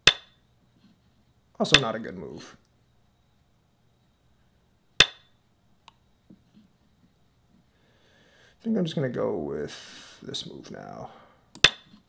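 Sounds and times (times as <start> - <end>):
go stone click on board: 11.6 - 12.0.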